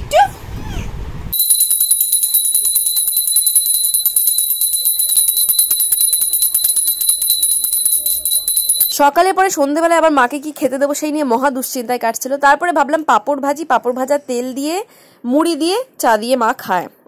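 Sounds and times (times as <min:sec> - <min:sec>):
brass hand bell ringing rapidly: 0:01.3 - 0:09.0.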